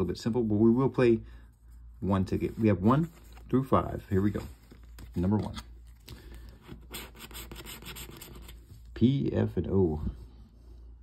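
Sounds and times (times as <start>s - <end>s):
plastic disc scratching lottery ticket: 6.9s - 8.6s.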